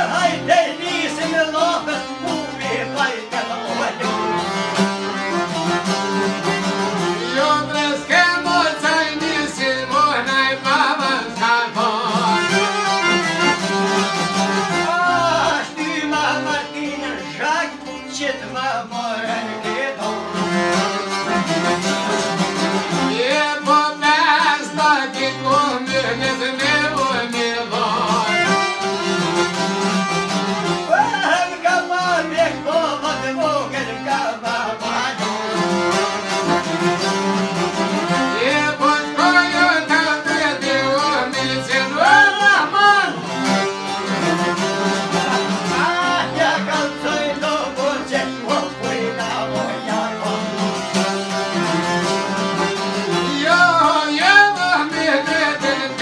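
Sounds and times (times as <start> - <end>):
man singing: 0.0 - 4.6, 7.0 - 21.4, 22.9 - 28.9, 30.7 - 36.7, 38.1 - 51.3, 52.1 - 56.0
accordion: 0.0 - 56.0
bowed string instrument: 0.0 - 56.0
plucked lutes: 0.0 - 56.0.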